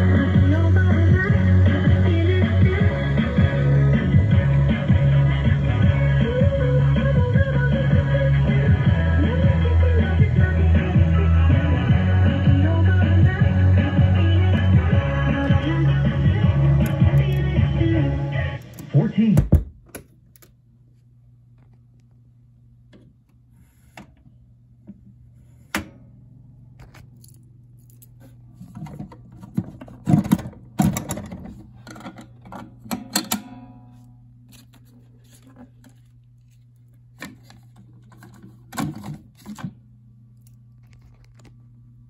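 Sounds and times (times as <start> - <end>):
low amplifier hum: 0.0 - 42.0
vinyl records clicking and clattering: 16.4 - 17.6, 28.1 - 39.8, 40.6 - 41.6.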